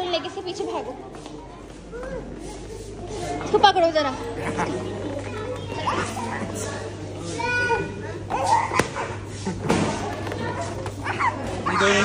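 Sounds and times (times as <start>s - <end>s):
children's voices: 0.0s - 9.3s, 9.9s - 12.0s
adult chatter: 0.0s - 12.0s.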